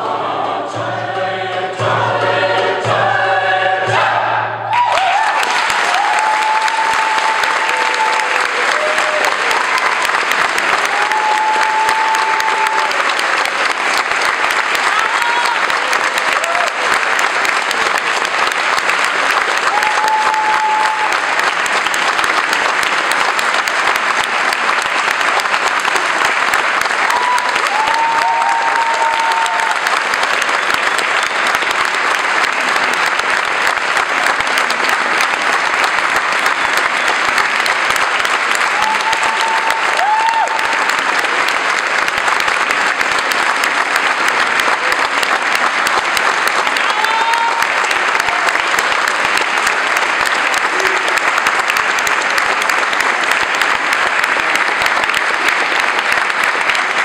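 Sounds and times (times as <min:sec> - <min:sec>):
audience applauding: 0:00.0 - 0:57.0
audience calls: 0:00.0 - 0:57.0.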